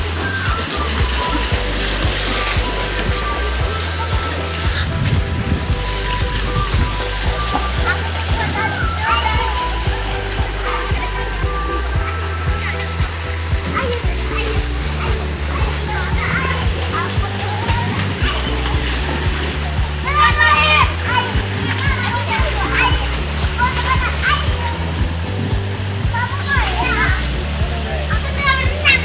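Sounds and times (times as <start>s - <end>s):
background music with bass: 0.0s - 29.0s
children splashing in pool: 0.0s - 29.0s
child calling out: 20.0s - 24.8s.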